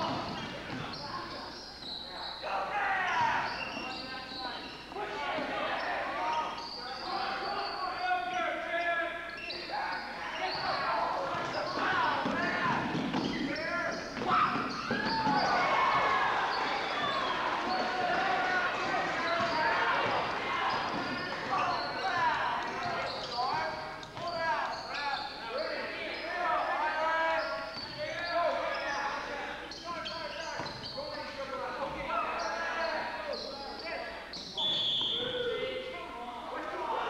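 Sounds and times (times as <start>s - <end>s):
sneakers squeaking on floor: 0.0s - 35.9s
crowd voices: 0.0s - 37.0s
referee whistle: 16.5s - 18.1s, 33.3s - 35.6s
basketball bouncing: 19.3s - 21.6s.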